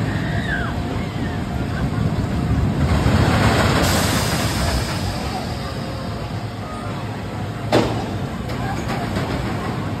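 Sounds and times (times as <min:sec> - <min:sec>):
roller coaster wheels rumbling on track: 0:00.0 - 0:10.0.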